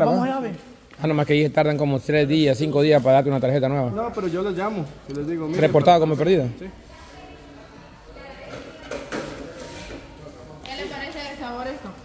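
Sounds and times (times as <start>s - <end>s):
faint chatter of voices: 2.4s - 12.0s.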